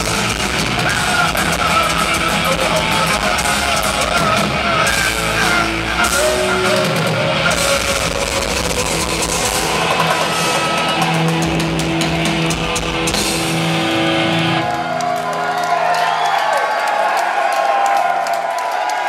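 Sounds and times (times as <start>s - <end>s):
drum kit: 0.0s - 14.9s
distorted electric guitars: 0.0s - 15.5s.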